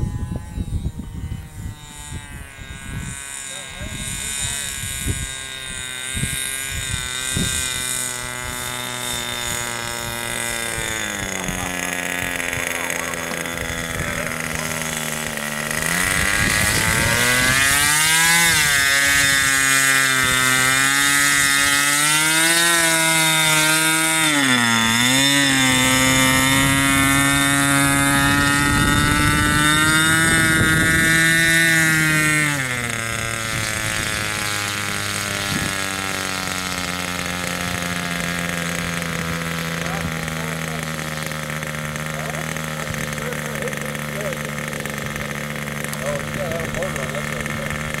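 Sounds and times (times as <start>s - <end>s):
model plane engine running: 0.0s - 48.0s.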